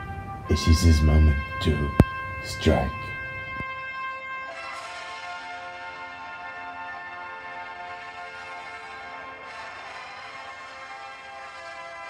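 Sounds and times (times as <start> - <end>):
orchestral brass and woodwinds: 0.0 - 12.0.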